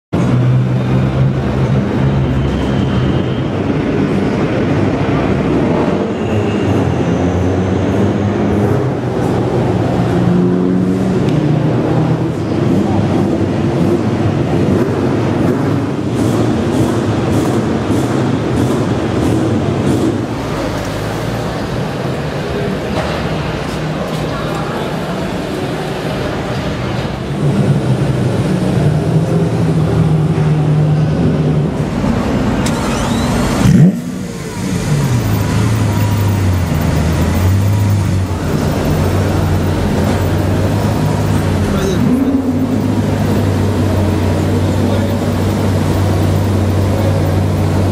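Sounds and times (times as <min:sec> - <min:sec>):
car engine idling: 0:07.9 - 0:47.9.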